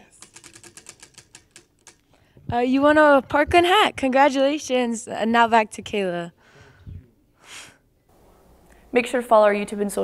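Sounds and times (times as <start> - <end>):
prize wheel clicking: 0.0 - 2.0.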